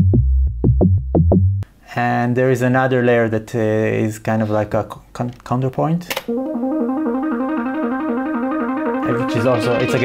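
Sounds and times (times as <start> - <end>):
synthesizer plucky notes: 6.3 - 10.0.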